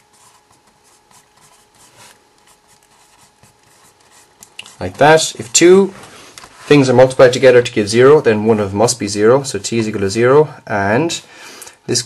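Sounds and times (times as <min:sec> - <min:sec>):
marker writing on whiteboard: 0:00.0 - 0:05.2.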